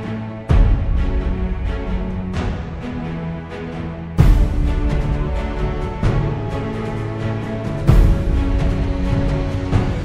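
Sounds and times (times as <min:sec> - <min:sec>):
music with sustained chords: 0:00.0 - 0:10.0.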